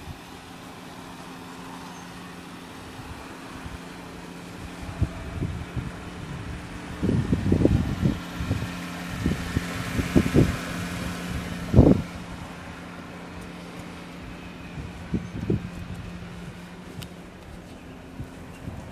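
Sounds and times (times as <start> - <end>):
wind buffeting microphone: 2.8 - 18.9.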